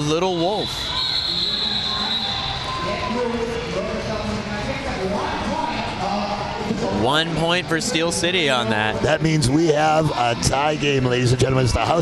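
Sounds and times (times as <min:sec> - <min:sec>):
crowd noise: 0:00.0 - 0:12.0
referee's whistle: 0:00.4 - 0:02.8.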